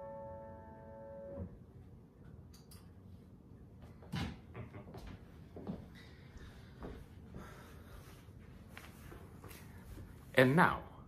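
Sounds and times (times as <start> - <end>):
piano chord ringing: 0.0 - 1.6
faint room noise: 0.0 - 11.0.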